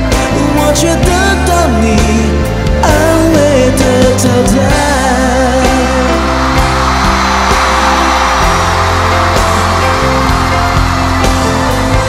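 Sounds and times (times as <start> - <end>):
live band playing pop instrumental: 0.0 - 12.0.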